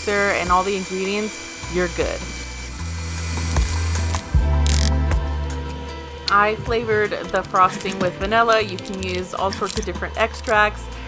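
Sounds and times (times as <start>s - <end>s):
stand mixer humming: 0.0s - 4.4s.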